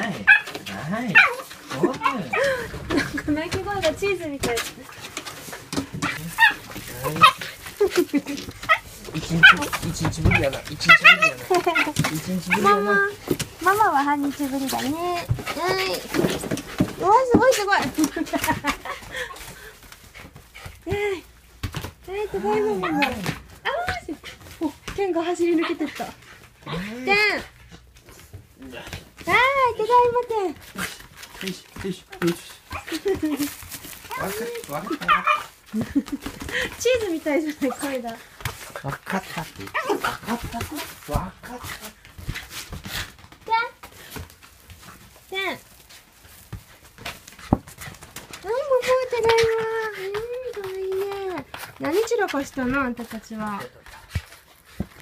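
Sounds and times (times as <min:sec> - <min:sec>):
dog whining: 0:05.8 - 0:13.2, 0:22.4 - 0:23.4, 0:34.1 - 0:35.6, 0:39.6 - 0:40.8.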